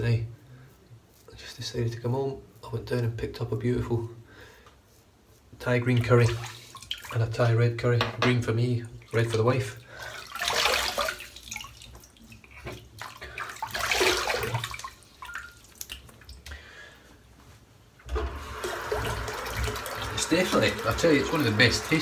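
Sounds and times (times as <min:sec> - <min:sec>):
water splashing at a sink: 0:05.8 - 0:07.5, 0:08.9 - 0:16.5, 0:18.0 - 0:22.0.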